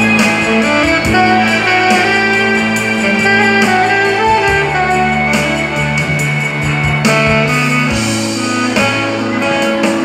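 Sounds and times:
guitar accompaniment: 0:00.0 - 0:10.0
saxophone melody: 0:00.0 - 0:10.0.

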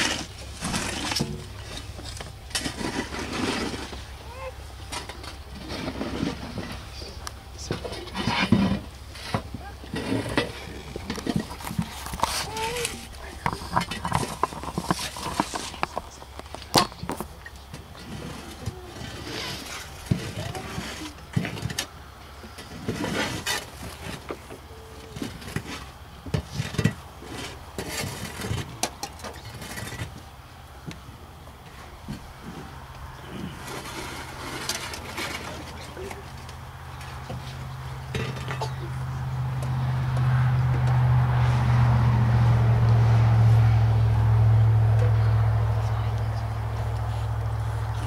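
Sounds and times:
shovels scraping soil: 0:00.0 - 0:07.2, 0:07.8 - 0:16.4, 0:18.0 - 0:21.6, 0:22.8 - 0:24.3, 0:32.4 - 0:36.3
people talking quietly: 0:00.0 - 0:30.0, 0:31.7 - 0:40.0, 0:43.5 - 0:48.0.

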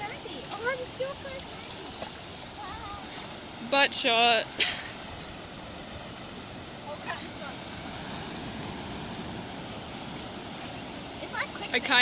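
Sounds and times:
ocean surf breaking on rocks: 0:00.0 - 0:12.0.

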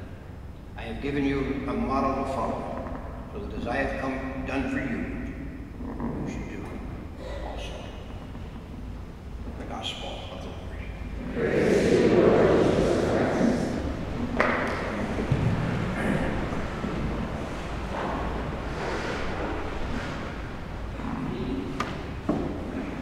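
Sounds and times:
crowd murmur in church: 0:09.7 - 0:23.0.

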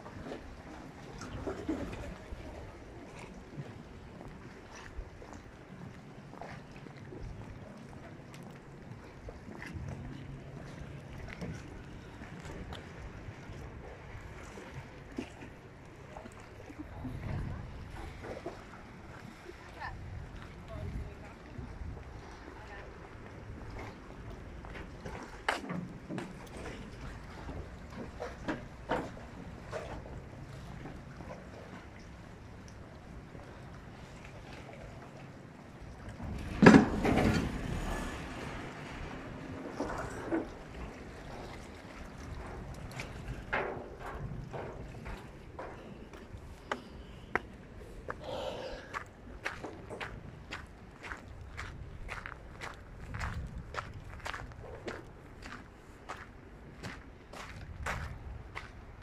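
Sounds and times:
water lapping and sloshing: 0:00.0 - 0:59.0
wind buffeting microphone: 0:16.1 - 0:25.4, 0:35.9 - 0:59.0.

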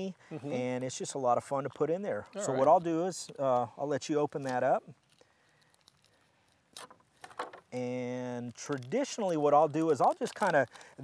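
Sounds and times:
man speaking drawn-out word: 0:02.4 - 0:02.8
plastic packaging crinkling: 0:04.3 - 0:07.6, 0:08.4 - 0:11.0.

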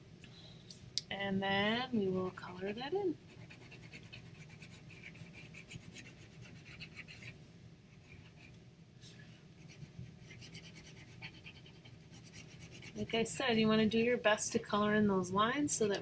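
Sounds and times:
pencil scratching on paper: 0:03.3 - 0:07.4, 0:09.6 - 0:13.2.

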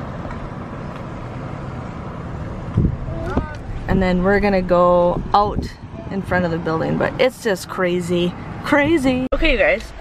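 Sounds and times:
car driving road noise: 0:00.0 - 0:10.0.

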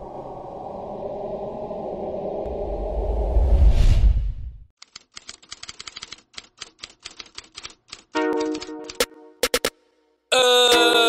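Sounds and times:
typewriter key clicks: 0:04.8 - 0:09.1.

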